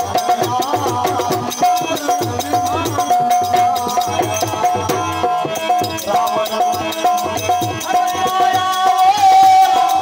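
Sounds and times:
dholak drum beat: 0.0 - 10.0
harmonium melody: 0.0 - 10.0
quick hand percussion: 0.0 - 10.0.

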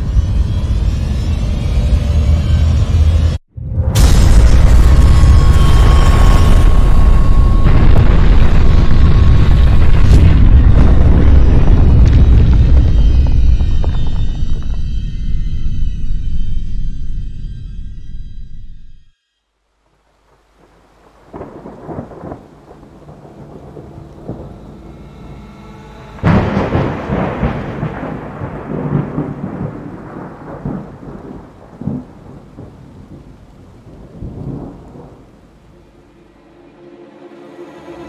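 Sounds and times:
rolling thunder: 3.7 - 14.9, 21.1 - 24.8, 26.2 - 35.7
loud thunderclap: 3.8 - 14.8, 21.3 - 24.6, 26.2 - 35.4
rain: 19.6 - 36.5.

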